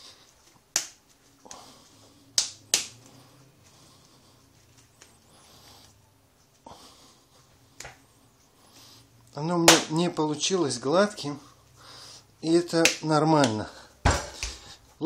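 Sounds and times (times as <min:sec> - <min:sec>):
hands slapping dough: 0:00.0 - 0:01.7, 0:02.3 - 0:03.2, 0:07.8 - 0:08.0, 0:09.7 - 0:10.1, 0:12.6 - 0:14.8.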